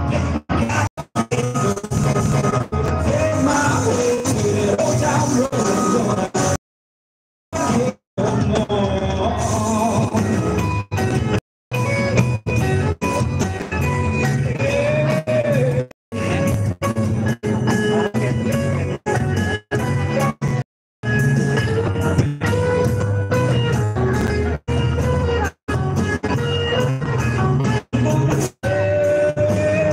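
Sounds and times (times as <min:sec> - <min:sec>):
bass guitar: 0:00.0 - 0:06.6, 0:07.5 - 0:29.9
drum kit: 0:00.0 - 0:06.6, 0:07.6 - 0:29.9
live rock band: 0:00.0 - 0:06.6, 0:07.6 - 0:29.9
electric guitar lines: 0:08.3 - 0:29.9.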